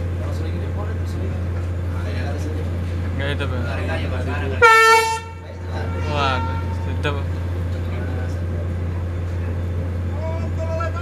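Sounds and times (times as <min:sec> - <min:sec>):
low engine drone: 0:00.0 - 0:11.0
horn blast: 0:04.6 - 0:07.3.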